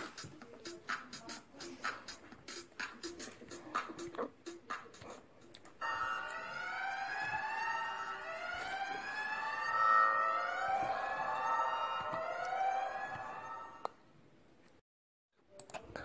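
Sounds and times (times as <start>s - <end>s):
wailing siren: 5.8s - 14.0s.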